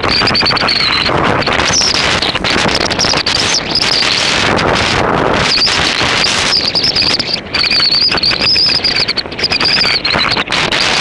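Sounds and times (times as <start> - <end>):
high wavering whistle tone: 0.0 - 4.5, 5.4 - 10.5
wind buffeting microphone: 0.0 - 11.0.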